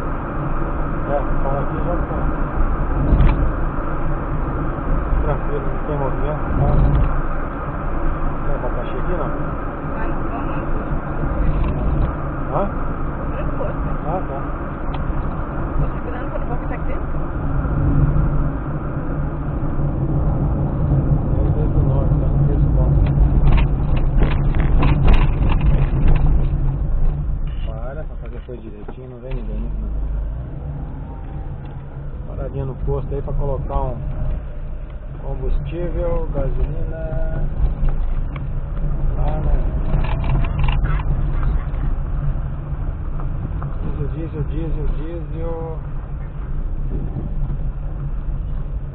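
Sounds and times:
engine and tyre rumble in car: 0:00.0 - 0:48.9
people talking: 0:01.1 - 0:02.3, 0:05.2 - 0:07.0, 0:10.0 - 0:10.8, 0:15.8 - 0:17.1, 0:21.3 - 0:23.1, 0:27.6 - 0:29.9, 0:32.2 - 0:34.0, 0:35.2 - 0:37.5, 0:39.1 - 0:41.8, 0:43.8 - 0:45.8.

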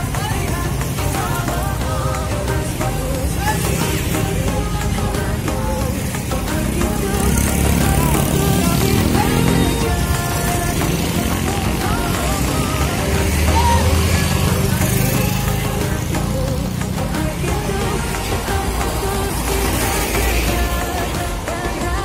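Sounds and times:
motorcycle engines passing: 0:00.0 - 0:22.0
music: 0:00.0 - 0:22.0
scattered voices: 0:00.0 - 0:22.0.

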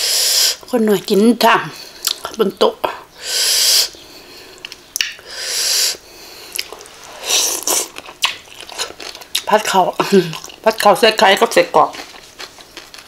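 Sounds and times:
breathy puffs of air: 0:03.1 - 0:04.6, 0:05.2 - 0:06.6
person chewing food: 0:04.4 - 0:05.3, 0:05.9 - 0:10.6, 0:11.9 - 0:13.0
mouth clicks: 0:04.6 - 0:08.4.

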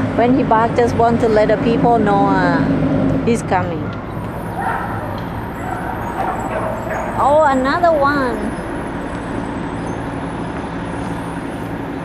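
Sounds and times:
low vehicle engine hum: 0:00.0 - 0:12.0
street noise: 0:00.0 - 0:12.0.

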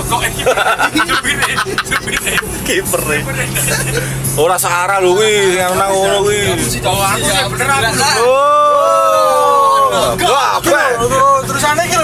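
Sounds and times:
car hum on the road: 0:00.0 - 0:12.0
people's voices: 0:00.0 - 0:12.0.

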